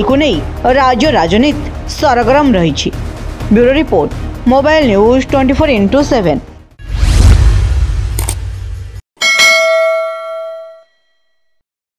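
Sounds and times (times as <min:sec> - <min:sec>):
low rumble: 0:06.8 - 0:09.0
notification bell ding: 0:09.2 - 0:11.4.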